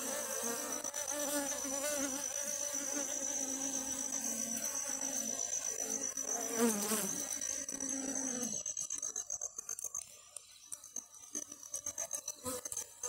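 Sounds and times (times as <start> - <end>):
bees humming: 0.0 - 9.2.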